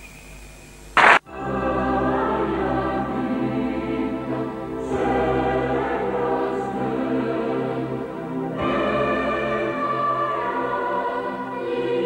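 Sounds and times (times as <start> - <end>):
choir singing sustained chords: 1.0 - 12.0.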